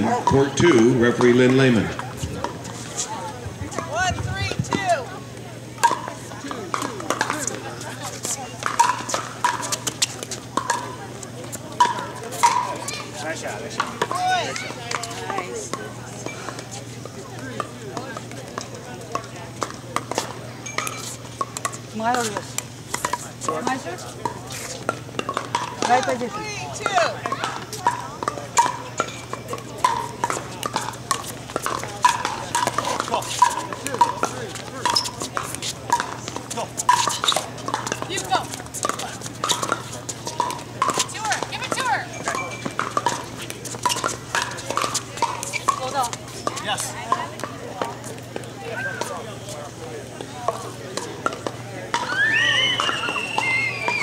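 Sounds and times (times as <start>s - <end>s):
people talking: 0.0s - 21.2s, 21.9s - 54.0s.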